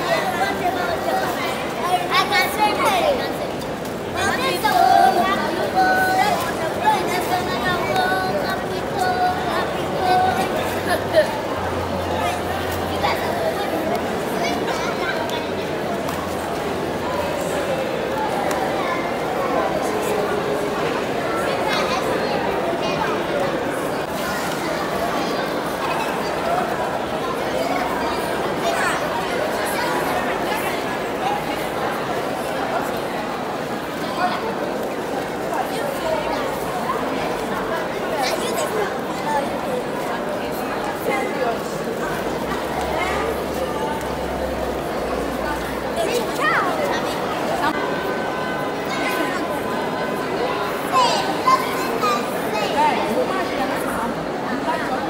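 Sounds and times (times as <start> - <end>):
crowd chatter: 0.0 - 55.0.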